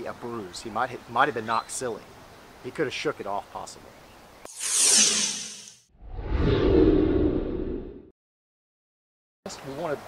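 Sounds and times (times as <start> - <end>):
high hissing whoosh: 4.5 - 5.8
low whoosh with deep rumble: 6.0 - 8.1.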